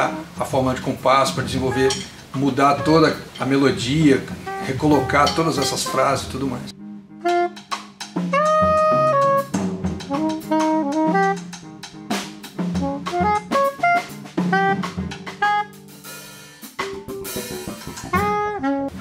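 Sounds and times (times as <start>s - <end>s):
soprano saxophone jazz melody: 0.0s - 16.2s, 17.7s - 19.0s
drum kit: 0.0s - 19.0s
low bass line: 17.2s - 19.0s.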